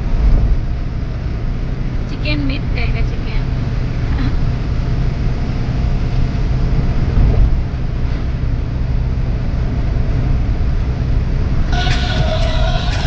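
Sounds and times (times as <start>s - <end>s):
car interior road rumble: 0.0s - 13.0s
music: 11.7s - 13.0s.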